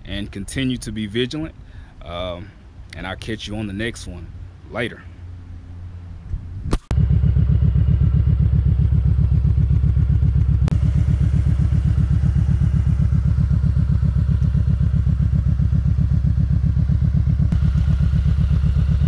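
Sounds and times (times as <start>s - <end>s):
motorcycle engine idling: 6.9s - 19.0s.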